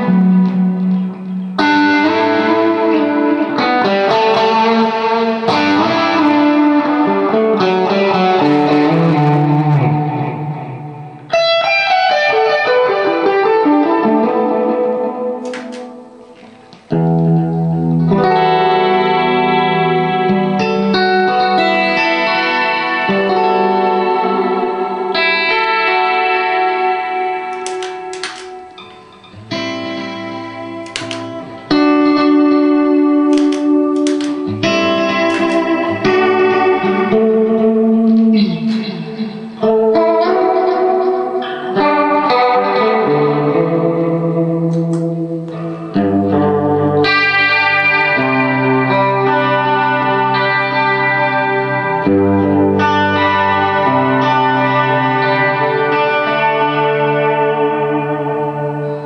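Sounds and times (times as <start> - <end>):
electric guitar chords: 0.0 - 59.0.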